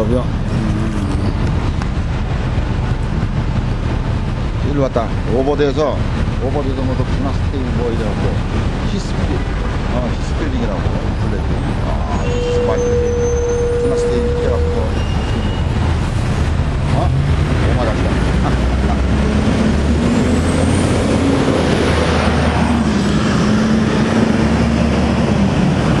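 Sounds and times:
bus engine passing: 0.0s - 26.0s
city street traffic: 0.0s - 26.0s
steady tone: 11.0s - 25.7s.

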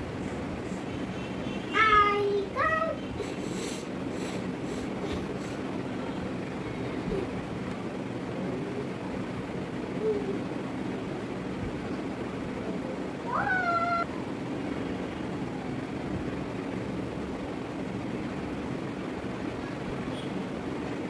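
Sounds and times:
background hum and hiss: 0.0s - 21.0s
cat meowing: 13.3s - 14.1s.

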